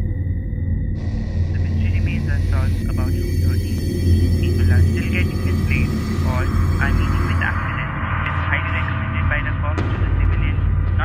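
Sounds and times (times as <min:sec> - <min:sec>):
car engine drone inside cabin: 0:01.0 - 0:09.1
indistinct voice: 0:01.5 - 0:11.0.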